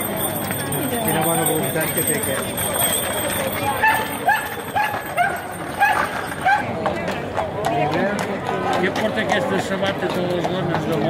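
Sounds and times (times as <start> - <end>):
crowd chatter: 0.0 - 11.0
horse hooves clopping on stone: 0.0 - 11.0.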